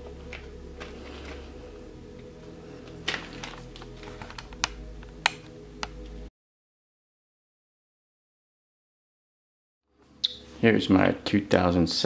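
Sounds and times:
steady low hum: 0.0 - 6.3.

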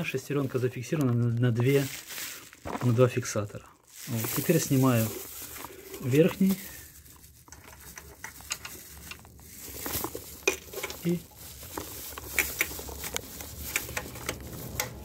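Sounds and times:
plastic bag rustling: 0.0 - 15.0.

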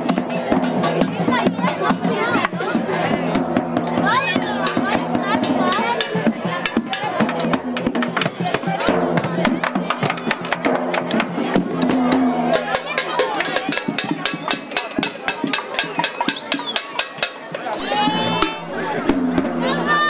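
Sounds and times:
bass drums beating: 0.0 - 20.0
crowd voices: 0.0 - 20.0.

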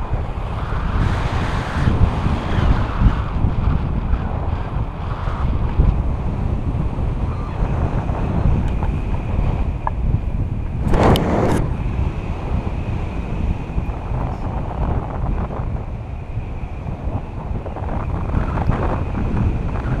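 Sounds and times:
wind rumble on microphone: 0.0 - 20.0.

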